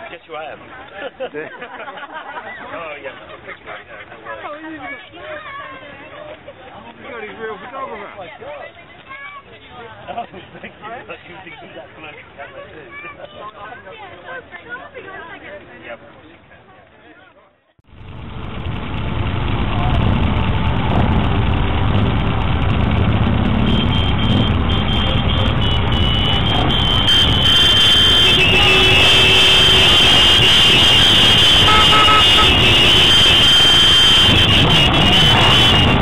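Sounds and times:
pack of motorcycles running: 17.9s - 36.0s
motorcycle horns: 23.3s - 36.0s.

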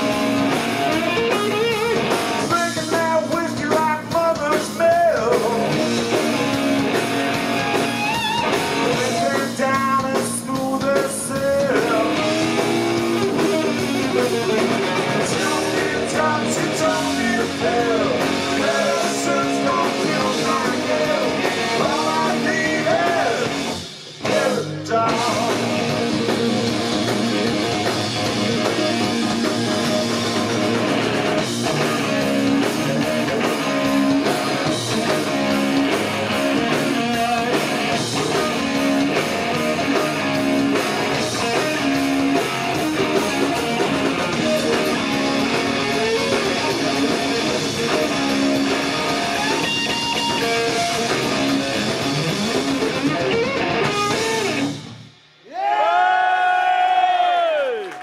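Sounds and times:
distorted electric guitar: 0.0s - 55.4s
bass guitar: 0.0s - 56.0s
drum kit: 0.0s - 58.0s.

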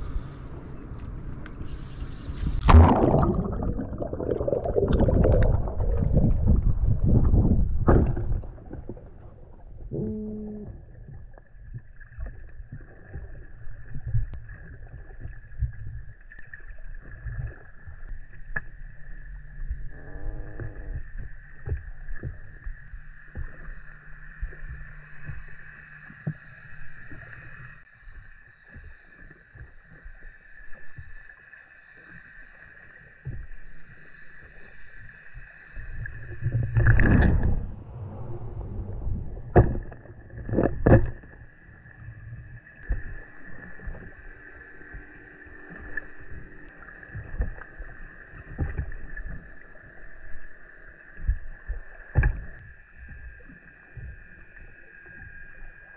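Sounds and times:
underwater rumble of moving water: 0.0s - 55.9s
rush of water: 1.6s - 9.4s, 36.0s - 45.0s
steady high hum: 18.3s - 27.9s, 35.2s - 50.4s.

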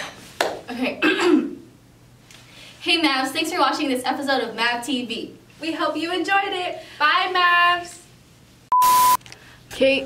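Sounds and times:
woman speaking: 0.7s - 1.1s, 2.8s - 8.1s, 9.8s - 10.0s
person clearing throat: 1.0s - 1.6s.

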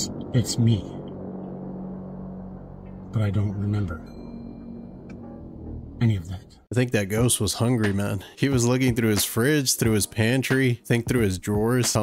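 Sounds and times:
low hum: 0.0s - 6.7s.

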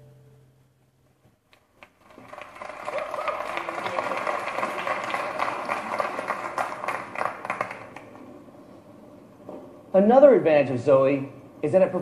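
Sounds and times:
audience applauding: 1.5s - 8.3s.

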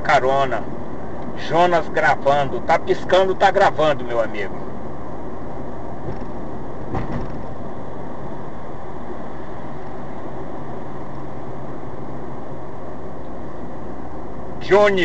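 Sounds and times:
car road and engine noise: 0.0s - 15.0s
brief thump: 6.0s - 6.3s, 6.9s - 7.5s.

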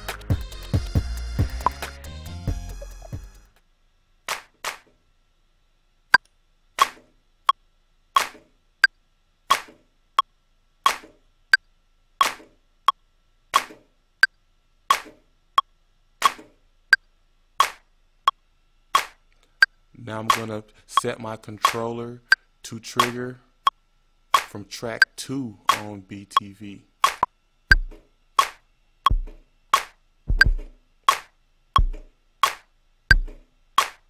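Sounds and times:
drum sample hits: 2.5s - 3.4s, 27.0s - 28.5s, 29.1s - 33.9s.

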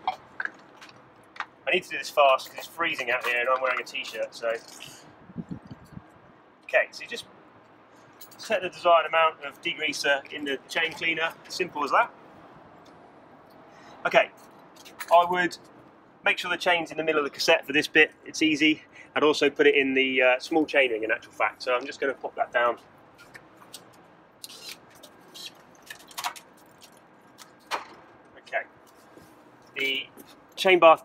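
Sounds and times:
outdoor background noise: 0.0s - 31.0s
bike chain clicks and rattles: 23.2s - 27.7s.

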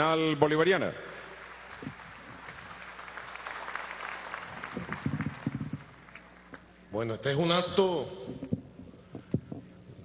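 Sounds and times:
audience applause: 1.1s - 6.5s.

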